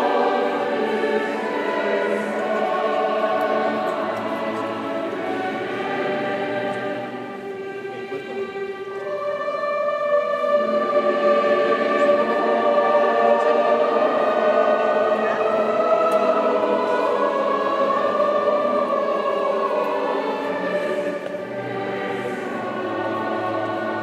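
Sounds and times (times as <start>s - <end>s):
choir singing a slow hymn: 0.0s - 24.0s.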